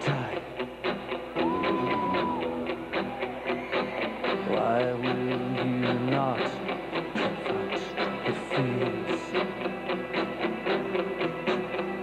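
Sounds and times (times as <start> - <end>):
bass guitar: 0.0 - 12.0
electric guitar: 0.0 - 12.0
drums keeping a beat: 1.4 - 8.9.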